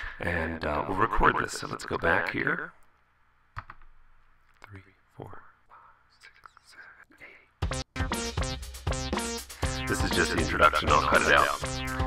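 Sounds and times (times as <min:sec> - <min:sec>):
person breathing: 0:00.0 - 0:00.2, 0:05.6 - 0:06.2, 0:09.4 - 0:09.8
computer mouse click: 0:03.6 - 0:04.7.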